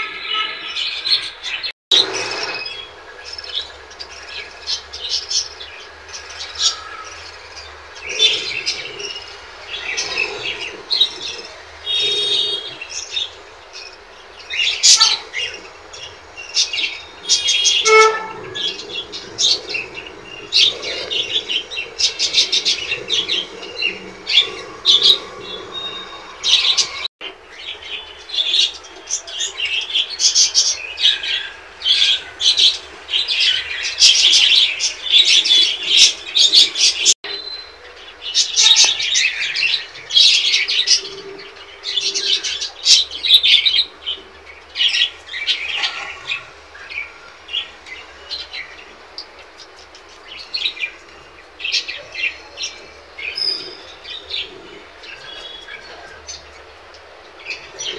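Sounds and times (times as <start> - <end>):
birds chirping and calling: 0.0 - 57.9.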